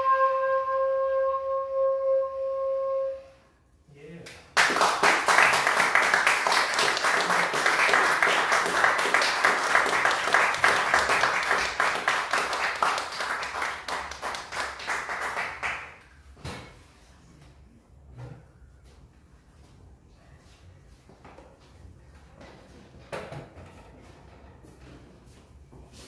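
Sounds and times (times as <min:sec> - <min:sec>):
audience applauding: 0:04.6 - 0:16.0.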